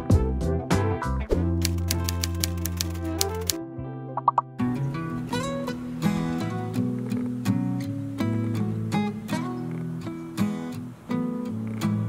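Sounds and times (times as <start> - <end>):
background music with bass line: 0.0 - 1.7
typewriter keystroke clicks: 1.6 - 3.6.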